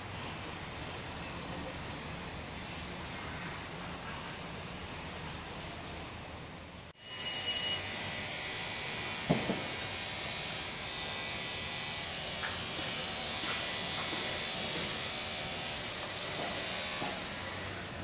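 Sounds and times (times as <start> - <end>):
construction site hum and hiss: 0.0 - 18.0
sharp knocks: 9.3 - 9.8.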